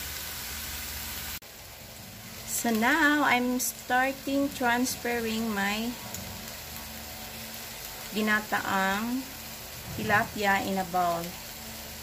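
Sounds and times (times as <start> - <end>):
food sizzling: 0.0 - 12.0.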